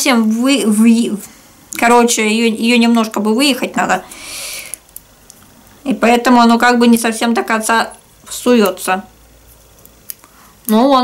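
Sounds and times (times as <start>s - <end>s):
breathy exhale: 4.0s - 4.8s.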